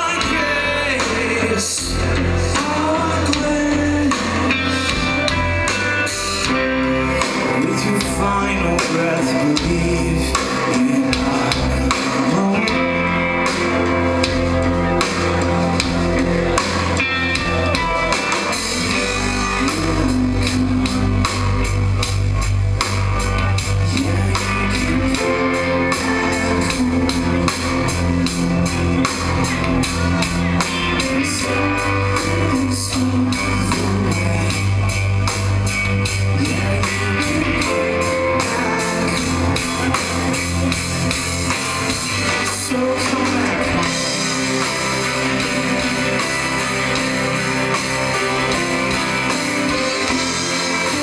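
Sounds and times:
bass guitar: 0:00.0 - 0:51.0
drum kit: 0:00.0 - 0:51.0
electric guitars: 0:00.0 - 0:51.0.

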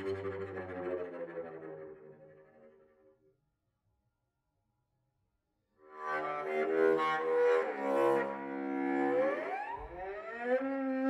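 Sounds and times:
bowed cello: 0:00.0 - 0:02.8, 0:06.0 - 0:11.0.

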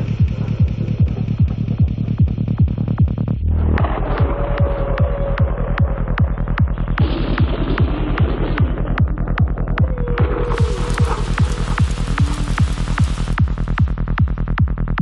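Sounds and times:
kick drum: 0:00.0 - 0:04.0
rolling bassline: 0:00.0 - 0:15.0
rain-like hiss: 0:10.5 - 0:13.6.

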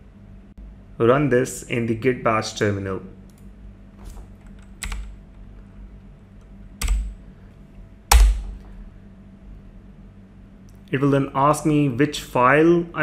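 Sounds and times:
computer keyboard key clicks: 0:04.5 - 0:05.1, 0:06.8 - 0:07.1.

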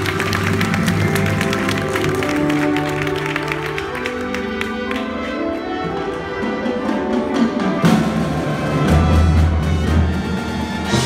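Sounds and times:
brass and woodwinds: 0:00.0 - 0:11.0.

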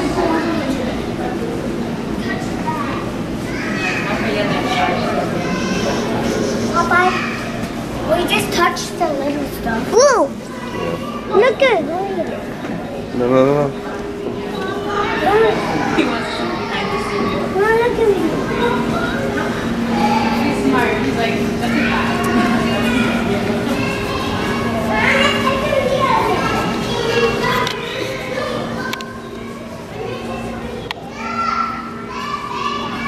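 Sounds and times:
chatter of visitors: 0:00.0 - 0:33.0
people talking: 0:00.0 - 0:33.0
steady low hum: 0:00.0 - 0:33.0
child's voice: 0:06.7 - 0:07.5, 0:08.1 - 0:12.4, 0:14.6 - 0:20.6, 0:21.6 - 0:33.0.

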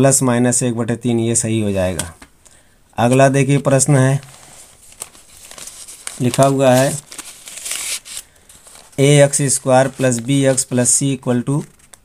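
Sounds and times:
paper rustling and crinkling: 0:03.5 - 0:12.0.

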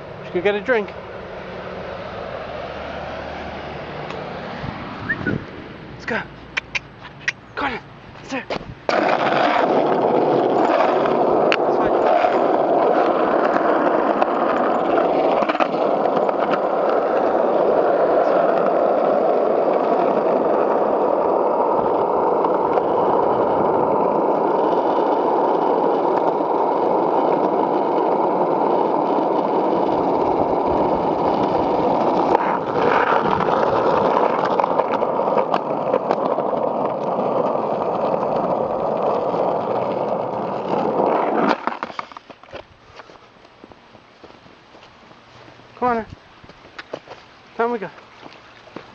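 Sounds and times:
skateboard wheels rolling on asphalt: 0:00.0 - 0:48.9.

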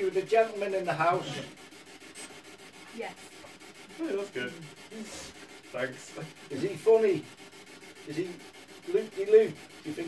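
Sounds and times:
faint scratchy rubbing: 0:00.0 - 0:10.0.

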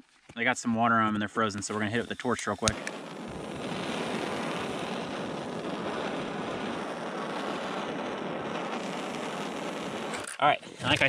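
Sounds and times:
propane torch hissing: 0:01.4 - 0:11.0.

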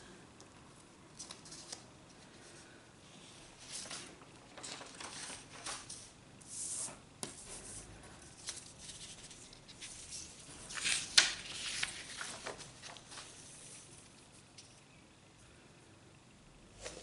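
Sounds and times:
paper rustling and sliding: 0:03.5 - 0:14.2.

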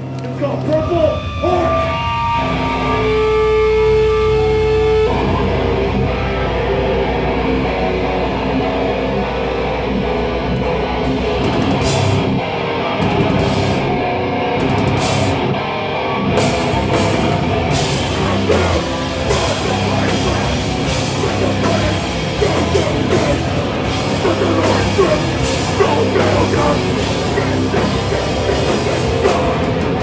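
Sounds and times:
punk band playing live: 0:00.0 - 0:30.0.

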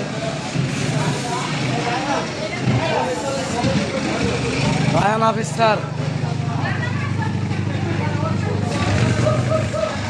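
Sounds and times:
faint voices: 0:00.0 - 0:10.0
low mechanical rumble of rotating drum: 0:00.0 - 0:10.0.

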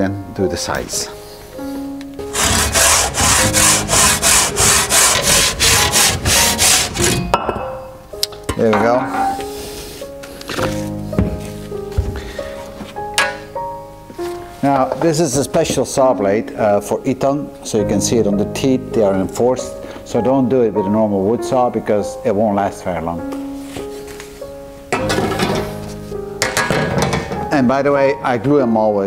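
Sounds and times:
guitar background music: 0:00.0 - 0:29.0
hand saw cutting concrete block: 0:02.3 - 0:07.2.

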